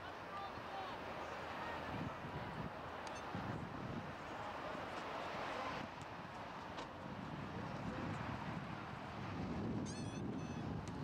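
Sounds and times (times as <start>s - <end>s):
wind rumbling on microphone: 1.8s - 5.0s, 5.6s - 11.0s.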